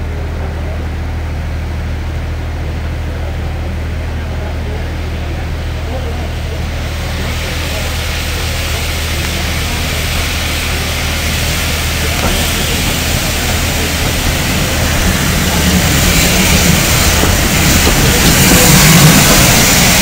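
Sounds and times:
steam locomotive passing: 0.0s - 20.0s.

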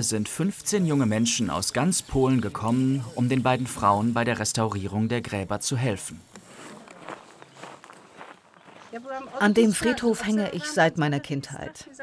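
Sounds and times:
faint footsteps: 6.3s - 9.8s.

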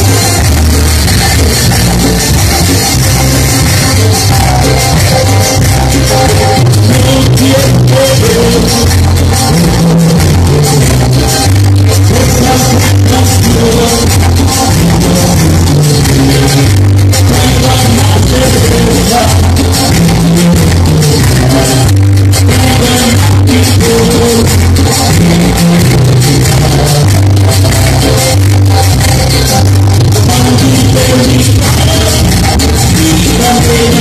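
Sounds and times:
live band playing dance music: 0.0s - 34.0s.

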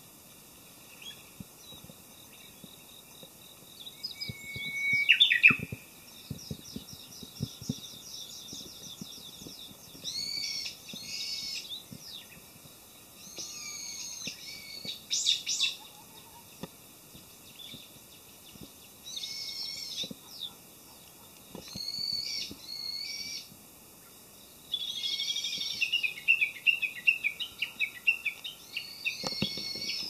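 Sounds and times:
birds singing and calling: 0.8s - 30.0s
rapid high bird trill: 3.9s - 12.4s, 13.2s - 16.5s.

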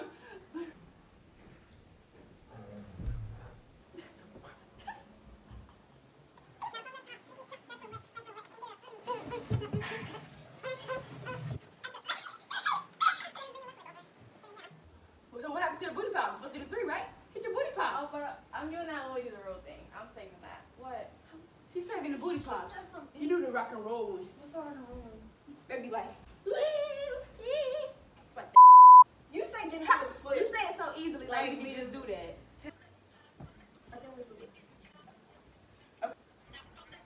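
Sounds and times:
high-pitched squeals and giggles: 6.6s - 14.8s
censor bleep tone: 28.6s - 29.0s.

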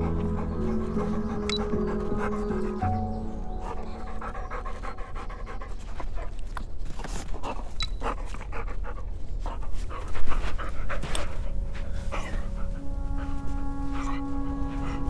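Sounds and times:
dog panting: 0.0s - 15.0s.

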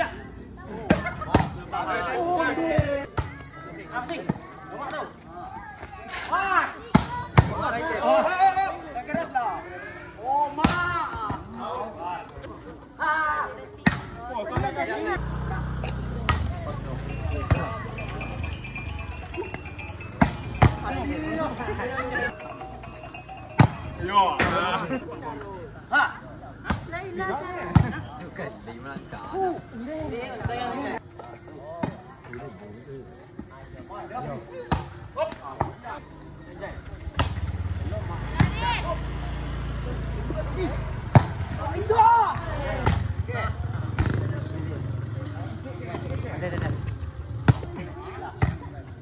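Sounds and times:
players shouting: 0.7s - 5.2s, 14.4s - 28.4s, 37.5s - 44.4s
volleyball hits: 15.8s - 21.2s, 23.4s - 24.8s, 37.1s - 37.6s, 41.1s - 41.6s, 42.3s - 43.2s.

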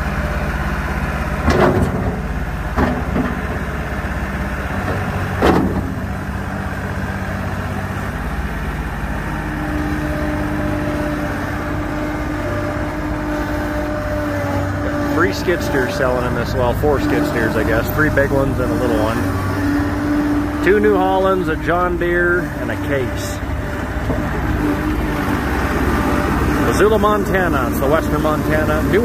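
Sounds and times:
diesel engine running: 0.0s - 29.0s
steady machine whine: 0.0s - 29.0s
sharp clunks: 1.4s - 3.6s, 4.8s - 6.1s.

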